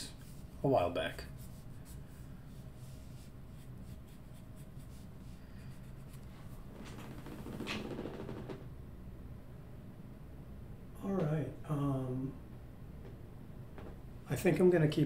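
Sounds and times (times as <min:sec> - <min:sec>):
pencil scratching on paper: 0:01.3 - 0:06.6.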